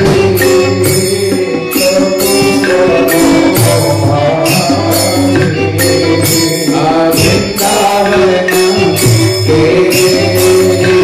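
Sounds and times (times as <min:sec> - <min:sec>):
instrumental accompaniment: 0:00.0 - 0:11.0
jingling metallic percussion: 0:00.0 - 0:11.0
voices singing a chant: 0:00.0 - 0:11.0.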